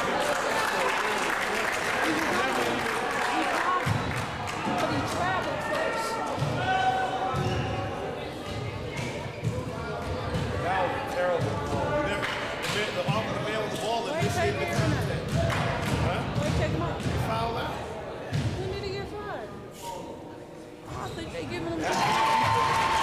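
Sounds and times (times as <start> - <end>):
echoing overlapping voices: 0.0 - 23.0.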